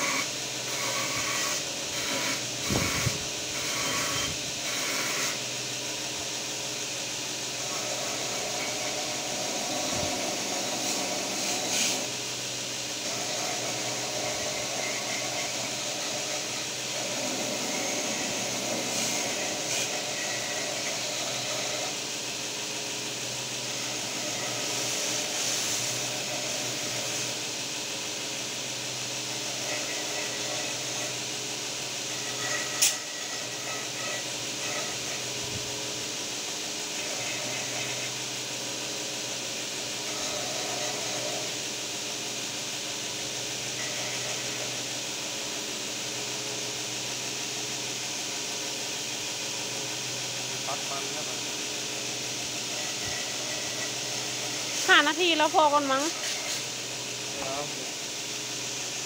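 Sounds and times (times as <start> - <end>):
belt grinder sanding: 0.0 - 5.9, 7.3 - 22.2, 23.2 - 27.4, 29.0 - 35.4, 36.8 - 38.6, 39.2 - 41.7, 52.0 - 57.6.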